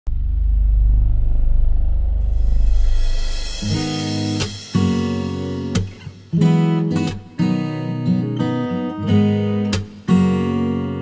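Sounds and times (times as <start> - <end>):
loud pulsing low rumble: 0.1 - 3.6.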